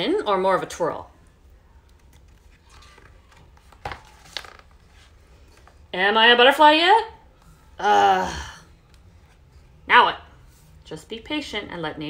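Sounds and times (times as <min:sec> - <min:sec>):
book page turning: 0:01.8 - 0:05.8.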